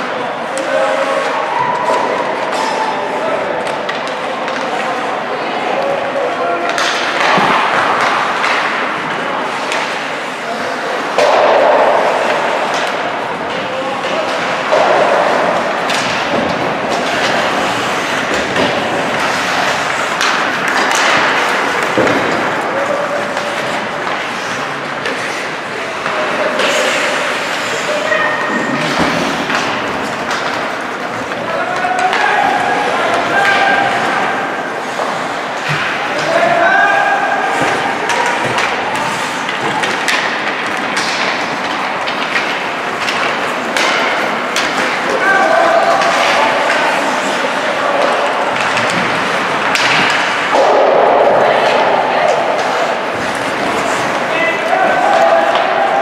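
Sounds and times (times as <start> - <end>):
hockey sticks and puck clacking: 0.0 - 56.0
skates scraping ice: 0.4 - 56.0.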